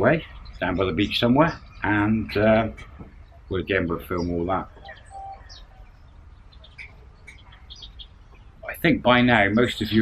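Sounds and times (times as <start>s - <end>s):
birds chirping faintly: 0.0s - 10.0s.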